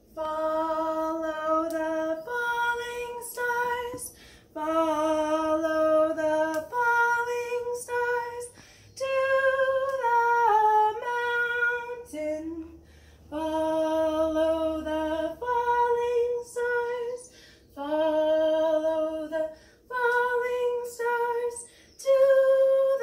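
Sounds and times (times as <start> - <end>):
woman singing unaccompanied: 0.0 - 23.0.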